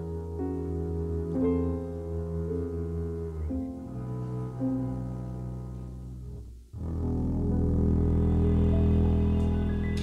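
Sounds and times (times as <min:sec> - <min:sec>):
upright double bass: 0:00.0 - 0:10.0.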